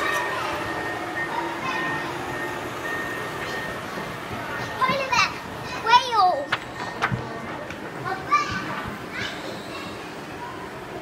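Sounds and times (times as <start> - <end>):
chatter of visitors: 0.0 - 11.0.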